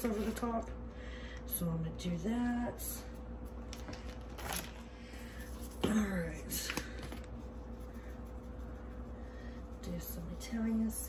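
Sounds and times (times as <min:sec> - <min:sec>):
faint steady hum: 0:00.0 - 0:11.0
plastic bag rustling: 0:03.8 - 0:04.9.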